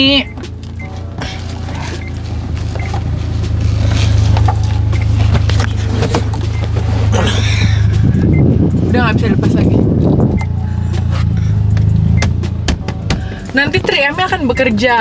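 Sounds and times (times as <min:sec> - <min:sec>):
low cabin hum: 0:00.0 - 0:15.0.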